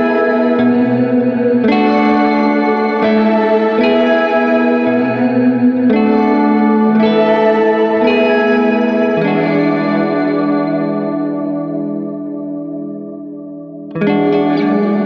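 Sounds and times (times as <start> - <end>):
electric guitar chords with reverb: 0.0 - 15.0.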